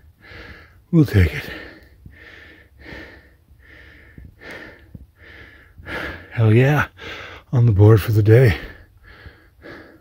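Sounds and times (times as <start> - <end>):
man breathing hard: 0.0 - 7.5, 8.6 - 10.0.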